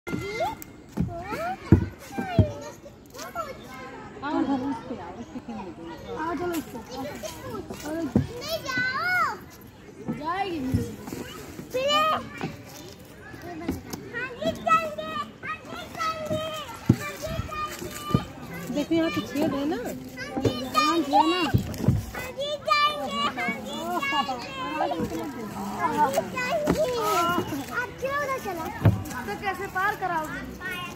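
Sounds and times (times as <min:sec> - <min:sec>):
children calling out at play: 0:00.1 - 0:30.9.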